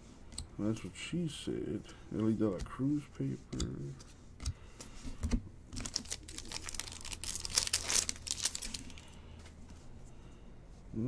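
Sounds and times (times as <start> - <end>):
wrapper tearing and crinkling: 5.8 - 9.1.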